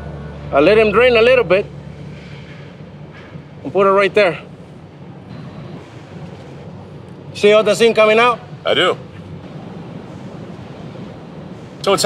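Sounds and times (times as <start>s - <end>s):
low industrial hum: 0.0s - 12.0s
industrial hiss: 9.4s - 12.0s.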